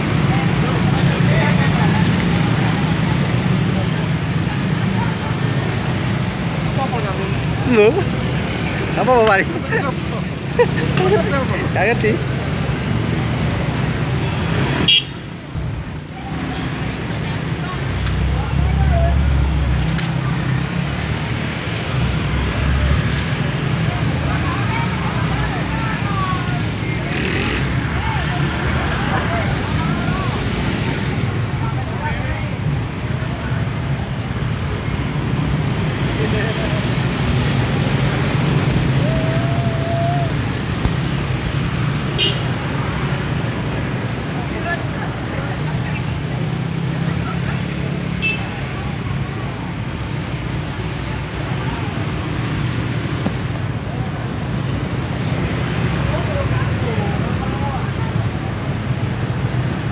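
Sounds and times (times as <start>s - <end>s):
cars passing: 0.0s - 59.9s
indistinct voices: 15.5s - 34.0s, 36.0s - 41.8s.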